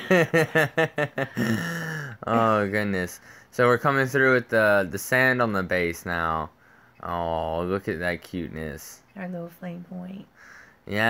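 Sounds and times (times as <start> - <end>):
person laughing: 0.0 - 2.6.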